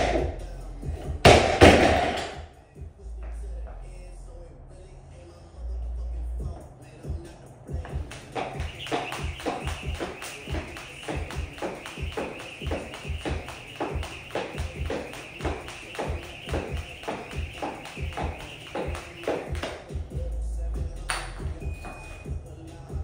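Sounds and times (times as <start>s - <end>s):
background music: 0.0s - 23.0s
jump rope slapping floor: 1.2s - 2.2s, 7.8s - 20.0s.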